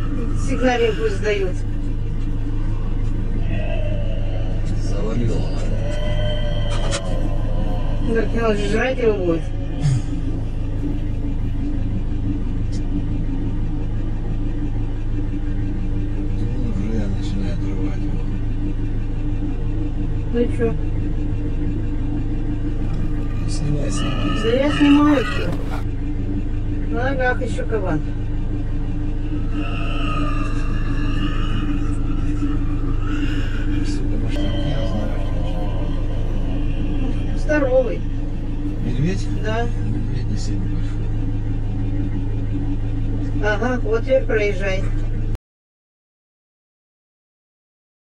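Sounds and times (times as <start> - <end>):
wild boar squealing: 0.0 - 11.4, 22.7 - 25.8, 29.3 - 39.7
vehicle engine idling: 0.0 - 45.4.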